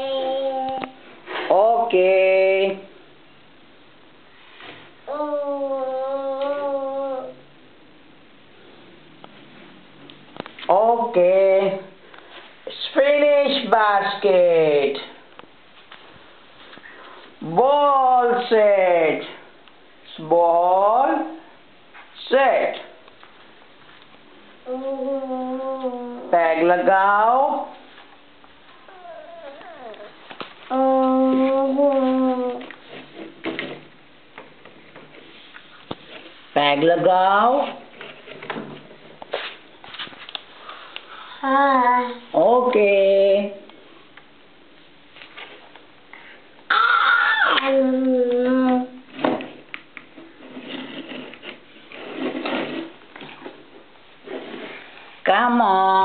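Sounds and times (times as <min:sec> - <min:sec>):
child whining: 0:00.0 - 0:01.0, 0:05.1 - 0:07.5, 0:24.7 - 0:26.3, 0:28.8 - 0:32.6, 0:41.2 - 0:42.3, 0:46.7 - 0:48.8
drawn-out vowel voice: 0:05.1 - 0:07.5, 0:24.6 - 0:27.8, 0:28.9 - 0:32.7, 0:41.2 - 0:43.6, 0:46.7 - 0:49.0, 0:55.3 - 0:56.0
soft shuffling: 0:39.2 - 0:41.1.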